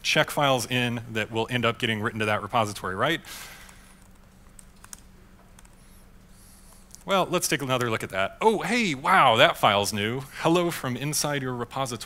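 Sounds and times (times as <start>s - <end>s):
low steady hum: 0.0s - 12.0s
typing on computer keyboard: 3.6s - 5.8s.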